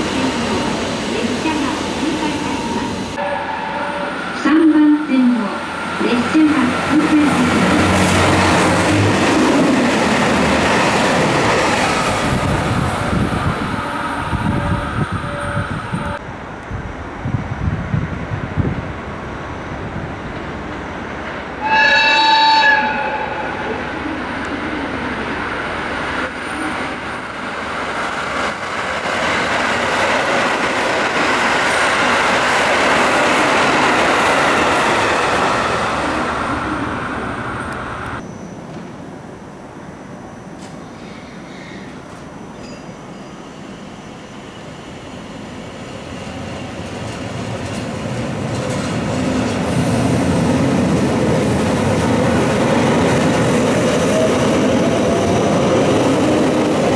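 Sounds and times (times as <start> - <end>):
diesel train passing: 0.0 - 56.9
electric train passing: 0.0 - 56.9
train horn: 3.2 - 5.1, 13.6 - 16.2, 21.6 - 23.9.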